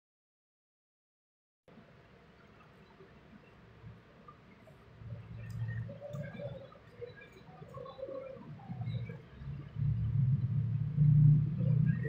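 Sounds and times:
low rumble: 0:08.7 - 0:12.0.

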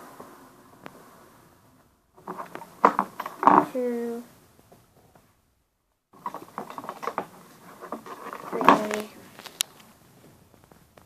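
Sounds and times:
rubber bands clicking and rustling: 0:02.2 - 0:03.8, 0:06.2 - 0:11.0.

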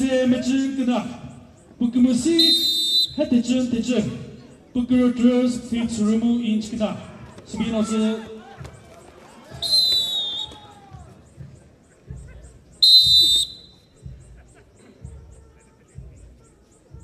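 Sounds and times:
referee's whistle blasts: 0:02.3 - 0:03.3, 0:09.5 - 0:10.8, 0:12.8 - 0:14.0.

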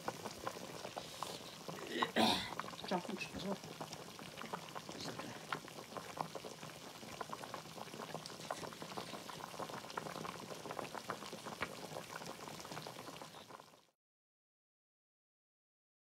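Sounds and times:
broth boiling hard: 0:00.0 - 0:13.9.

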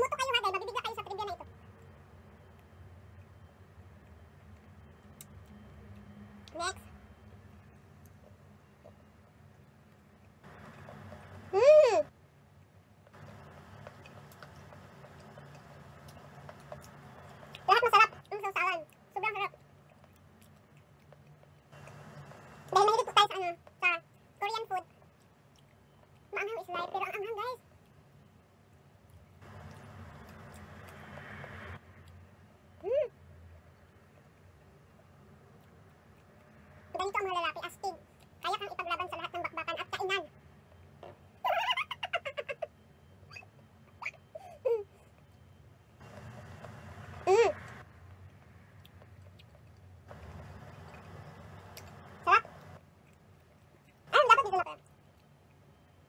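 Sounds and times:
faint low hum: 0:00.0 - 0:56.0.

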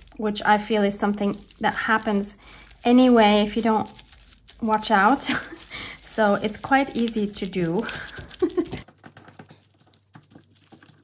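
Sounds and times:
tissue paper crinkling: 0:00.0 - 0:11.0
person laughing: 0:05.3 - 0:06.0, 0:07.9 - 0:08.8.

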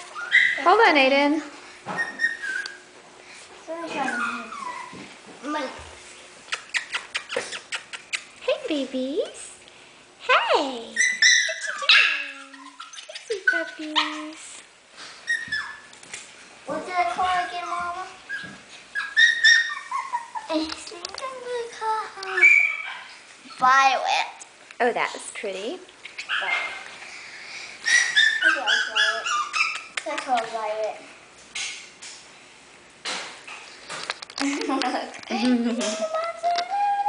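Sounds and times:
puppies whimpering: 0:00.0 - 0:00.7, 0:01.9 - 0:02.9, 0:03.9 - 0:05.1, 0:11.0 - 0:14.4, 0:15.2 - 0:15.9, 0:17.5 - 0:20.6, 0:22.3 - 0:23.6, 0:27.8 - 0:30.0.

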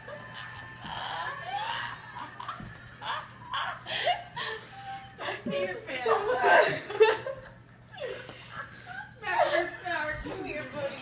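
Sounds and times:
stifled giggles: 0:00.0 - 0:10.9.

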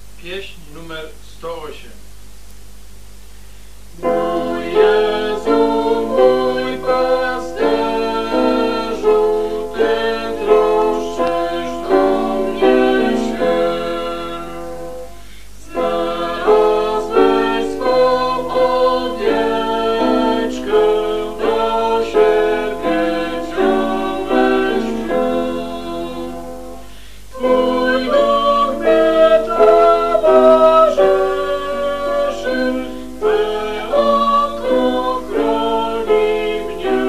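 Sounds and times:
hymn being sung: 0:04.0 - 0:37.0.

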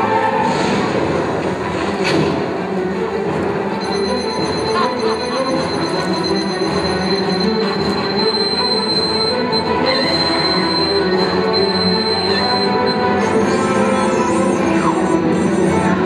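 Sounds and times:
droning and screeching noise: 0:03.9 - 0:16.0.

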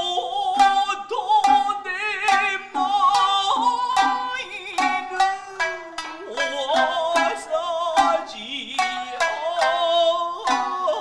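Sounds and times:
person singing long wavering notes: 0:00.0 - 0:11.0
shamisen plucks: 0:00.0 - 0:11.0.

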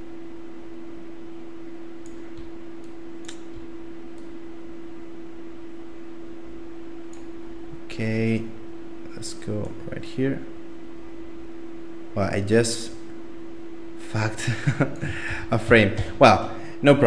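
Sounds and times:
electrical hum and hiss: 0:00.0 - 0:17.0
faint computer mouse clicks: 0:02.0 - 0:03.5.

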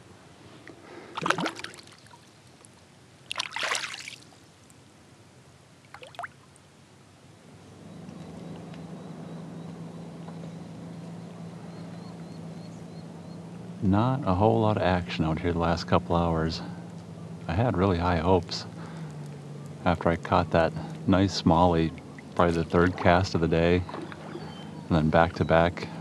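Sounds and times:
fish splashing in water: 0:01.1 - 0:02.4, 0:03.2 - 0:04.4, 0:05.9 - 0:06.4, 0:22.0 - 0:24.9
steady low hum: 0:04.2 - 0:26.0.

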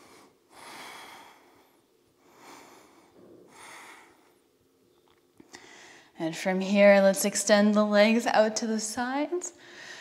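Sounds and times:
woman breathing: 0:00.0 - 0:04.5, 0:05.4 - 0:06.2, 0:09.6 - 0:10.0.

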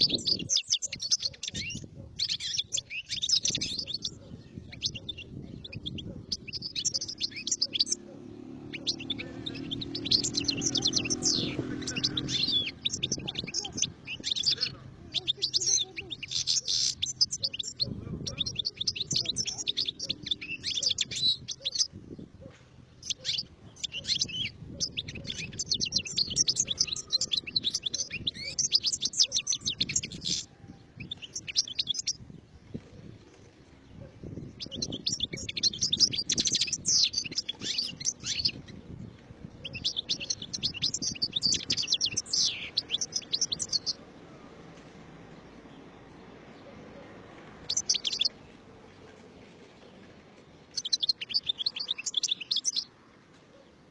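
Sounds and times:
goldfinch singing: 0:00.0 - 0:44.2, 0:47.6 - 0:48.6, 0:50.6 - 0:52.9.

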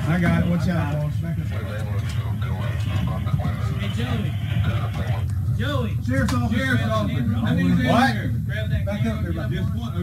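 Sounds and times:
men's voices overlapping: 0:00.0 - 0:10.0
steady low rumble: 0:00.0 - 0:10.0.

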